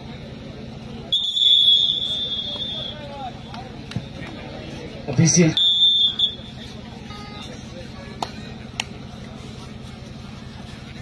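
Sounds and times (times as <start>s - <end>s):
crowd noise: 0.0s - 11.0s
referee's whistle blast: 1.1s - 3.2s, 5.5s - 6.5s.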